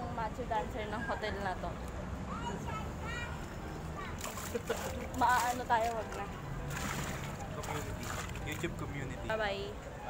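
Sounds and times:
pool water splashing: 3.0s - 9.6s.

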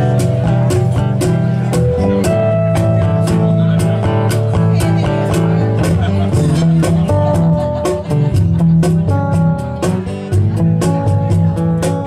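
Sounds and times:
band jamming with guitar: 0.0s - 12.0s
steady drum beat: 0.0s - 12.0s.

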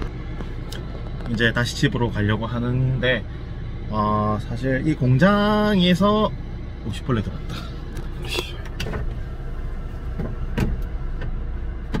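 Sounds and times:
car cabin hum: 0.0s - 12.0s.

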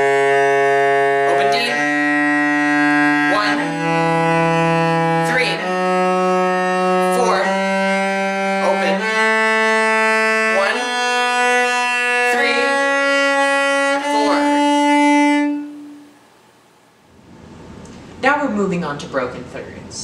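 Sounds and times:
cello bowed scale: 0.0s - 16.3s.

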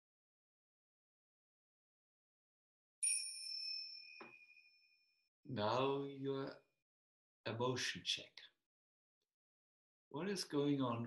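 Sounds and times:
small bell ringing: 3.0s - 5.0s.

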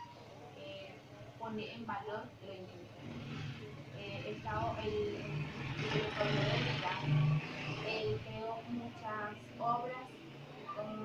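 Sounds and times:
motor vehicle passing: 2.7s - 11.0s.

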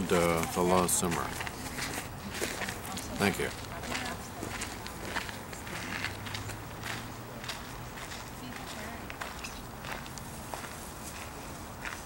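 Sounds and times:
footsteps on gravel: 0.0s - 12.0s
low background noise: 0.0s - 12.0s.

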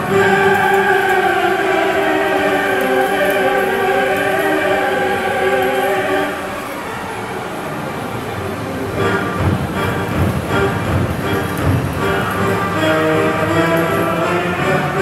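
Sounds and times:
choir-like held chord: 0.0s - 15.0s.

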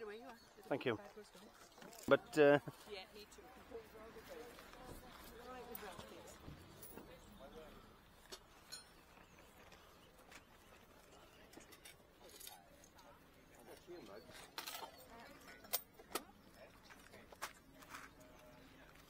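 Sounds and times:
faint distant voices: 0.0s - 19.0s.

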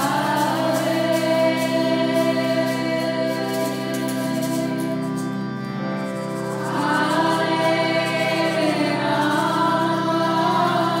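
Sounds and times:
instrumental drone: 0.0s - 11.0s.

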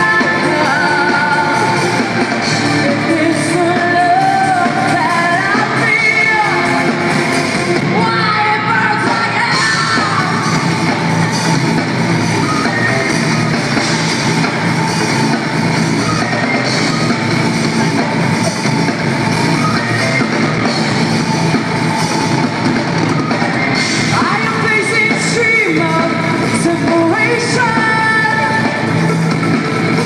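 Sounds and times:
amplified electric guitars: 0.0s - 30.0s.

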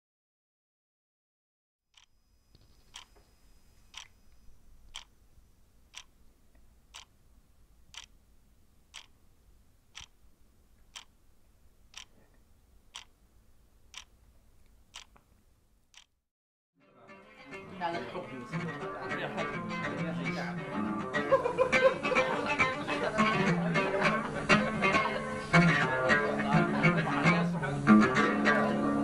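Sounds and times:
faint low hum: 2.0s - 16.0s
clock ticking: 2.8s - 3.2s, 3.9s - 4.2s, 4.9s - 5.1s, 5.9s - 6.2s, 6.9s - 7.1s, 7.9s - 8.2s, 8.9s - 9.2s, 9.9s - 10.2s, 10.8s - 11.2s, 11.9s - 12.2s, 12.9s - 13.2s, 13.9s - 14.1s, 14.9s - 15.2s, 15.9s - 16.1s.

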